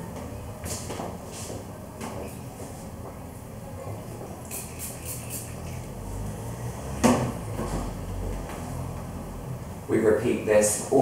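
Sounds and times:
spray bottle spritzes: 4.4s - 5.8s.

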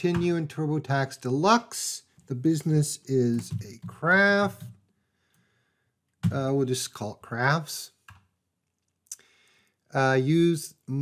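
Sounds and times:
faint breathy noise: 9.1s - 9.8s.

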